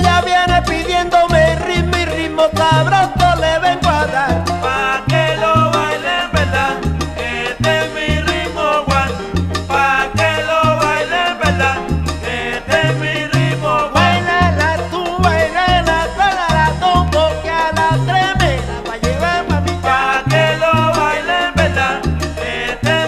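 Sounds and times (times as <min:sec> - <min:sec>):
percussion strokes: 0:00.0 - 0:23.0
repeating bass line: 0:00.0 - 0:23.0
salsa band playing: 0:00.0 - 0:23.0.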